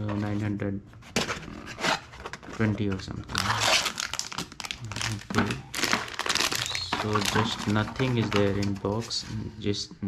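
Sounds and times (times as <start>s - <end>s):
packaging crinkling: 3.3s - 9.0s.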